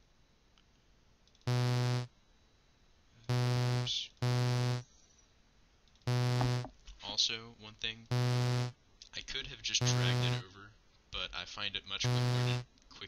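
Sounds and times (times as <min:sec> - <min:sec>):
short low synthesizer notes: 0:06.1 - 0:06.7.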